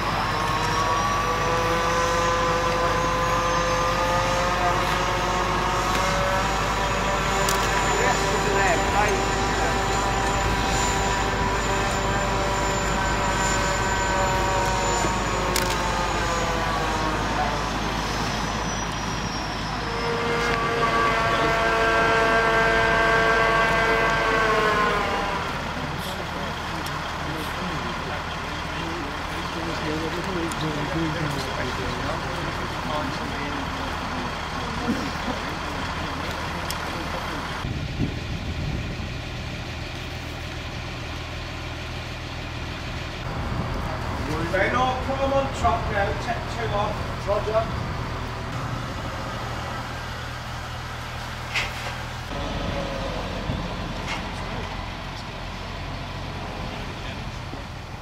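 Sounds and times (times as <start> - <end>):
crane diesel engine revving: 0.0 - 58.0.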